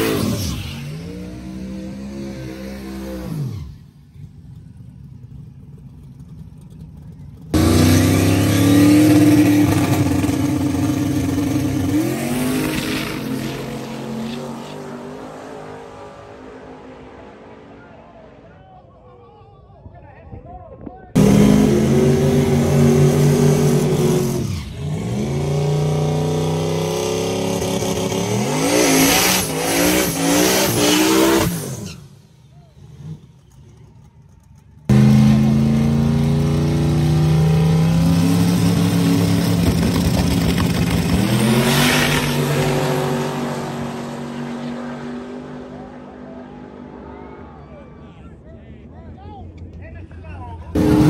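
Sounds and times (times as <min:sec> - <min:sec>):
race car engines at full throttle: 0:00.0 - 0:19.2, 0:21.1 - 0:51.0.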